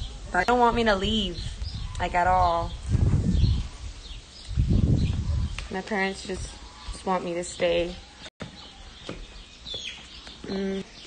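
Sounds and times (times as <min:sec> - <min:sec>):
bird chirping: 0:00.0 - 0:11.0
faint outdoor background noise: 0:00.0 - 0:11.0.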